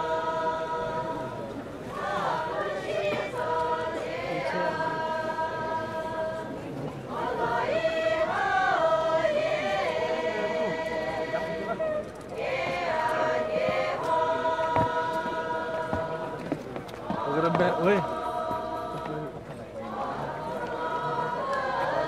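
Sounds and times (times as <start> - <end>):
women singing unaccompanied: 0.0 - 22.0.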